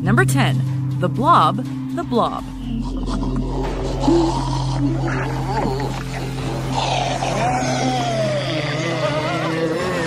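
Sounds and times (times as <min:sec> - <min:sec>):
low music drone: 0:00.0 - 0:10.0
long wavering cry: 0:02.6 - 0:10.0.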